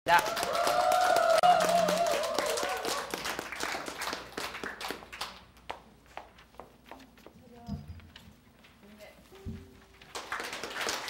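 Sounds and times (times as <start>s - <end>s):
group clapping: 0.1s - 5.8s, 9.9s - 11.0s.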